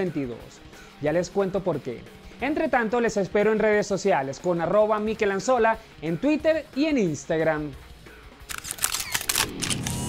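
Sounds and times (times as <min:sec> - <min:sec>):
camera shutter clicks: 0:08.5 - 0:10.0.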